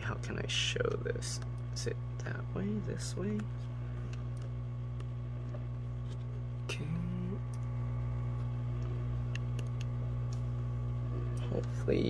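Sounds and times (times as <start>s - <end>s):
hot air station humming: 0.0s - 12.0s.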